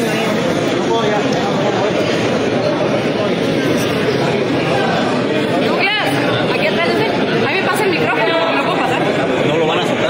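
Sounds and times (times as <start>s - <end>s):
crowd talking in hall: 0.0s - 10.0s.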